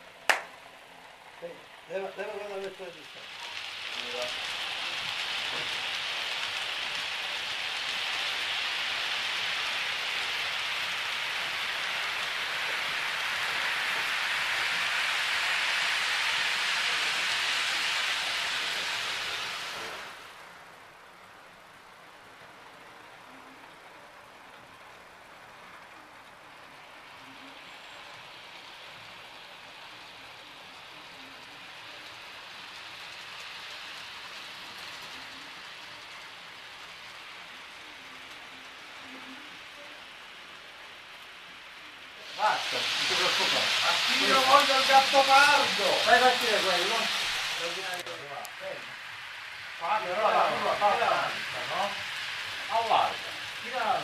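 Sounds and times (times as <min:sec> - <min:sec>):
model train wheels hissing: 0:00.0 - 0:54.0.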